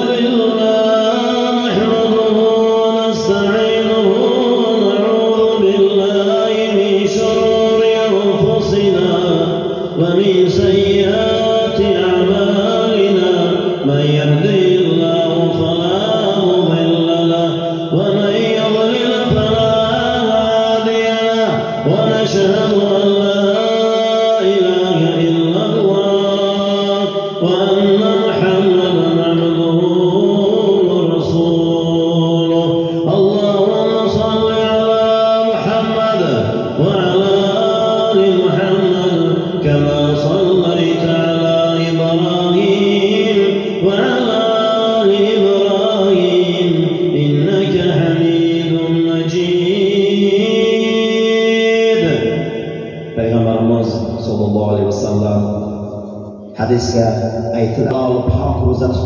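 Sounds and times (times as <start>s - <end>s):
man chanting through microphone: 0.0s - 59.0s.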